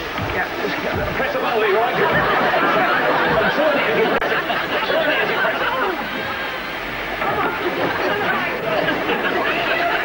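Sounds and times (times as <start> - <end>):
indistinct chatter of voices: 0.0 - 10.0.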